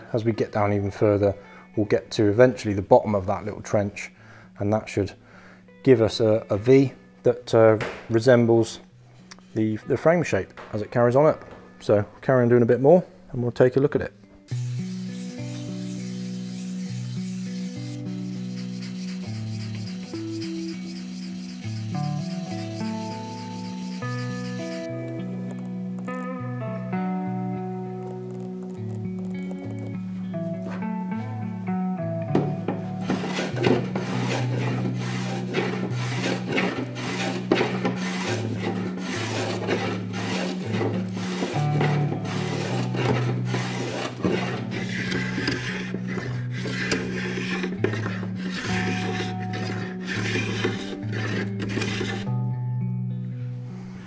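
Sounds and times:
blade rubbed on abrasive paper: 14.5 - 24.9, 33.0 - 52.3
block plane shaving wood: 14.8 - 24.9, 33.0 - 52.3.

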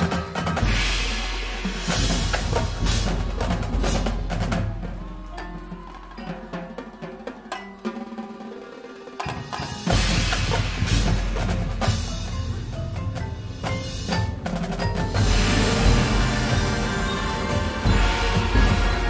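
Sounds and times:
marching band playing: 0.0 - 19.0.

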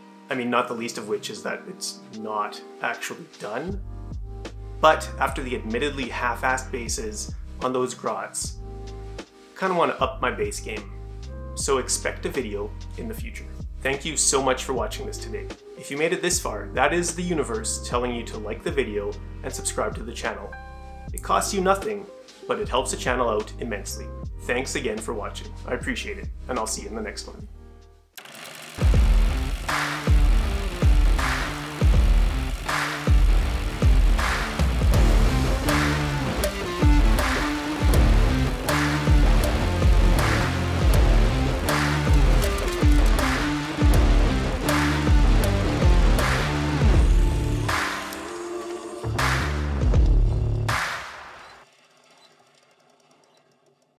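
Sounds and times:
music with heavy bass beat: 28.8 - 48.1, 49.0 - 51.4.

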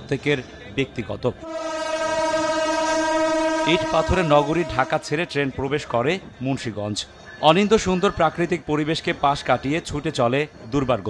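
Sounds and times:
train horn long blast: 1.4 - 5.3.

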